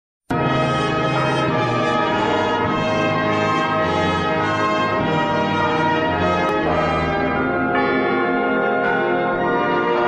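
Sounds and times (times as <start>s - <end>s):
church bells pealing: 0.3s - 10.0s
orchestral brass chords: 0.3s - 10.0s.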